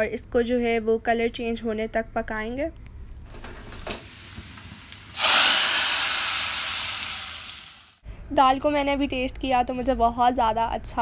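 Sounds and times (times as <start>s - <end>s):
hot oil sizzling: 3.3s - 8.0s.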